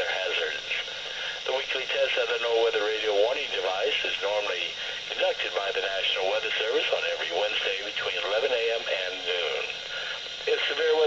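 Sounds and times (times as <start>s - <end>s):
radio static hiss: 0.0s - 11.0s
announcer voice over radio speaker: 1.5s - 9.8s, 10.4s - 11.0s.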